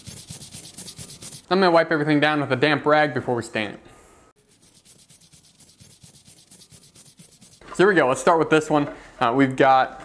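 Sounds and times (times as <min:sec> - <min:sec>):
cloth rag wiping wooden boards: 0:00.0 - 0:01.5, 0:04.5 - 0:07.8.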